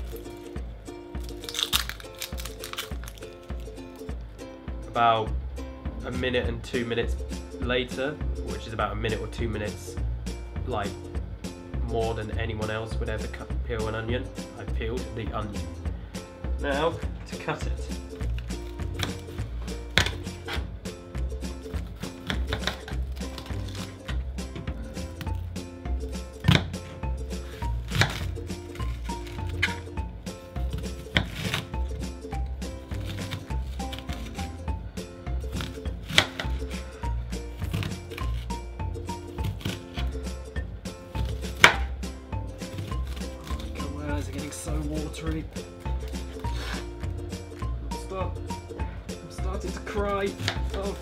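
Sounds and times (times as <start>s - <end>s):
background music: 0.0s - 51.0s.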